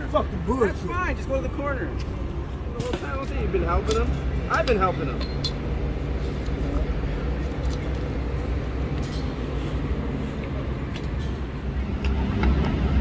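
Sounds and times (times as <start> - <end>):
hand tools clinking: 3.8 - 5.6.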